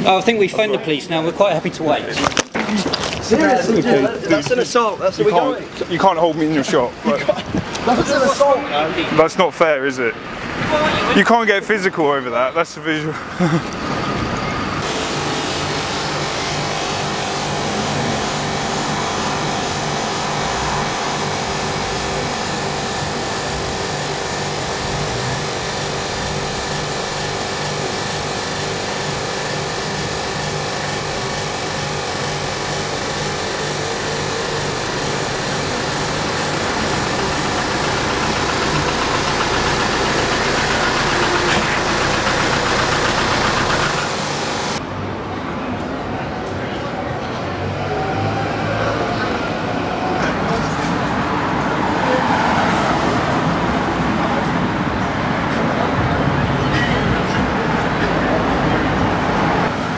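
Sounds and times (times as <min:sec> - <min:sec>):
engine-like hum: 0:13.2 - 0:44.9.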